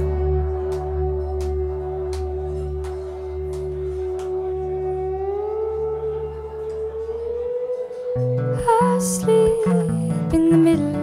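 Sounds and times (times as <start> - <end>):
guitar string pitch gliding: 0.0 - 11.0
strummed guitar chords: 0.0 - 11.0.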